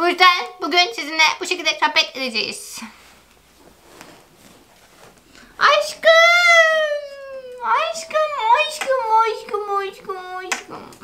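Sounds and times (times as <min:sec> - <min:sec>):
rustling on a bed: 0:02.7 - 0:06.2.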